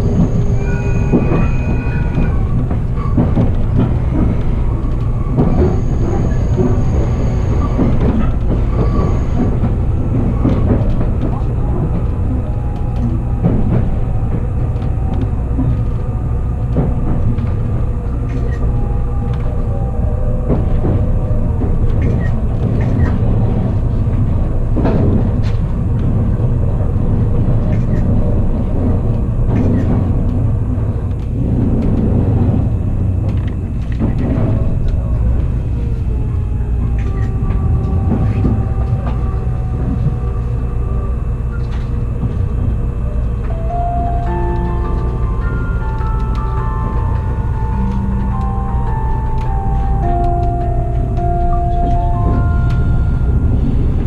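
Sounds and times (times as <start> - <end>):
indistinct voices: 0.0 - 54.0
railcar rumble: 0.0 - 54.0.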